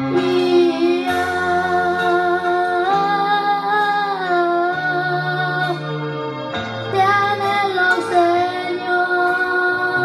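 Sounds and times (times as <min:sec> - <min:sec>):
boy singing into a microphone: 0:00.0 - 0:06.0, 0:06.8 - 0:10.0
backing music with low chords: 0:00.0 - 0:10.0.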